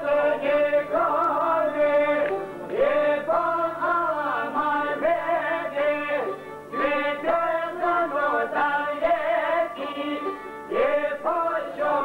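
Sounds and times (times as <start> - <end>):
man singing: 0.0 - 12.0
violin: 0.0 - 12.0.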